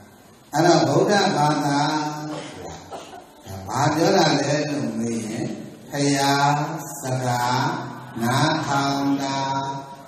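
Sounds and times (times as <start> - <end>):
man chanting verses: 0.5 - 10.0.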